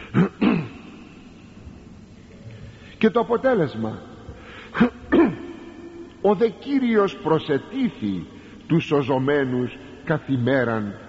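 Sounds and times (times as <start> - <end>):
man clearing his throat: 0.0 - 0.9, 4.8 - 5.5.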